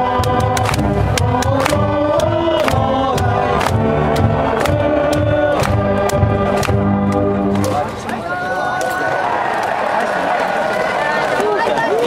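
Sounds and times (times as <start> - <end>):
crowd shouting together: 7.4 - 12.0.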